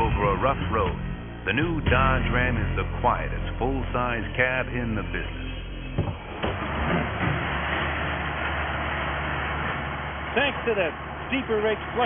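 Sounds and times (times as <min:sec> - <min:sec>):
diesel engine low drone: 0:00.0 - 0:12.0
loud clattering machinery: 0:06.0 - 0:12.0.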